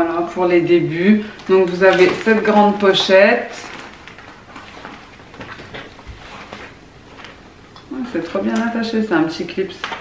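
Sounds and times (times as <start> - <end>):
handbag pouch handling noise: 1.6 - 7.4.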